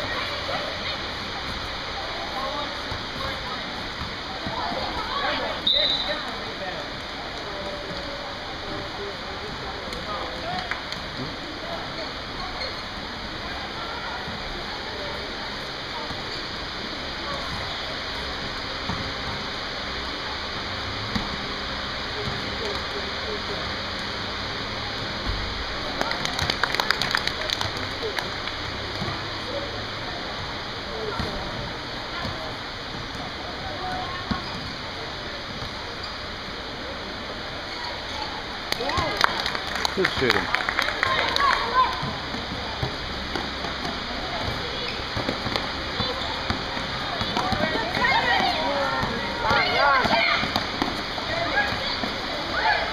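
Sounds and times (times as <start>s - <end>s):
knocks and squeaks on court: 5.6s - 6.4s, 11.8s - 13.1s, 33.9s - 34.9s, 35.5s - 36.5s, 37.6s - 38.4s, 42.0s - 52.3s.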